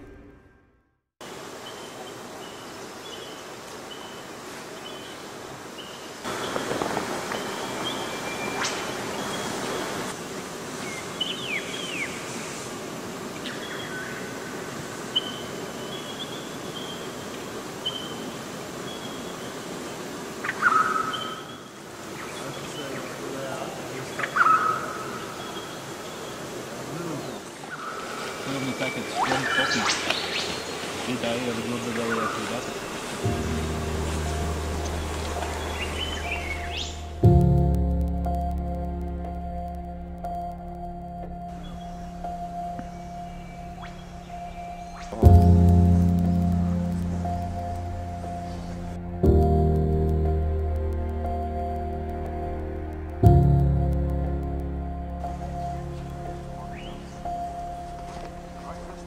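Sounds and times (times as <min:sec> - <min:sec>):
birds chirping: 0:01.3 - 0:59.0
gliding bird calls: 0:05.8 - 0:10.2, 0:20.4 - 0:37.2, 0:41.5 - 0:49.2, 0:55.2 - 0:59.0
loud sharp bird calls: 0:20.4 - 0:37.2.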